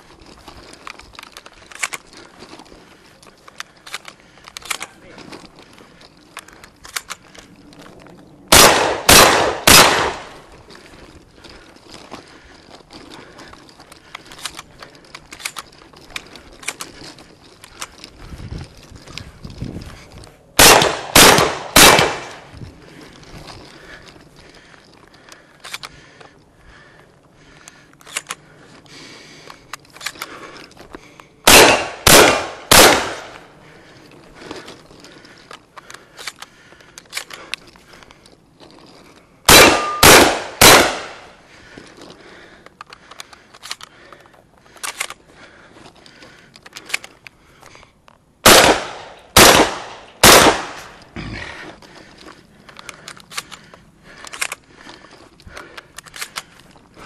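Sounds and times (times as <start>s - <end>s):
shotgun shots: 8.5s - 10.4s, 20.6s - 22.5s, 31.4s - 33.4s, 39.5s - 41.3s, 48.4s - 51.0s
faint clicks and knocks: 41.7s - 48.3s.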